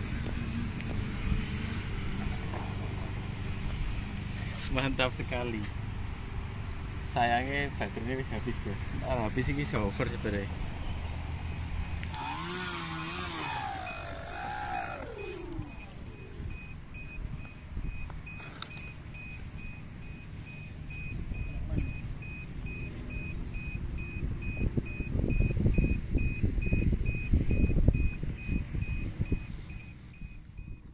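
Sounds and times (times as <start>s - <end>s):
electric motors whining: 0.0s - 17.7s
rapid electronic beeping: 0.0s - 18.4s.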